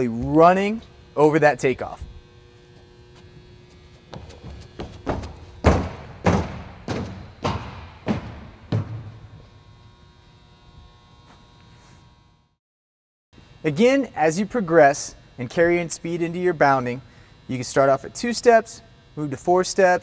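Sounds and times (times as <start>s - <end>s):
running footfalls on track: 3.1s - 9.6s.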